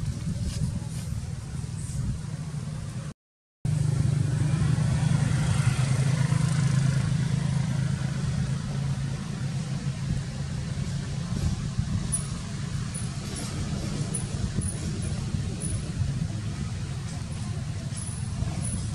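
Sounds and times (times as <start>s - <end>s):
vehicle engine humming: 3.7s - 18.9s.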